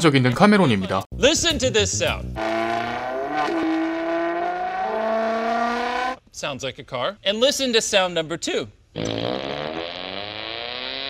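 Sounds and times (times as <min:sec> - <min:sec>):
car engine accelerating: 0:02.3 - 0:06.2.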